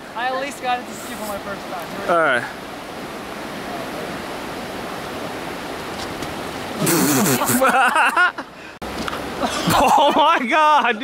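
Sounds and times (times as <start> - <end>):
river rushing: 0.0 - 11.0
man laughing: 6.8 - 8.5, 9.4 - 10.8.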